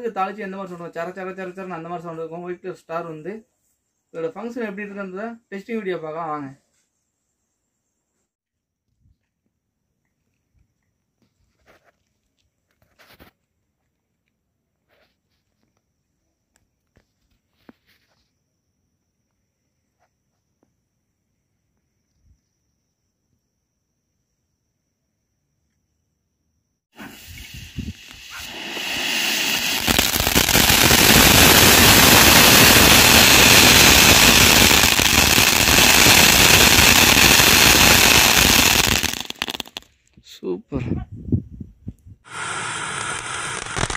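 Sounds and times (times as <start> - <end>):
firework fountain crackling: 27.0 - 39.9, 42.3 - 43.9.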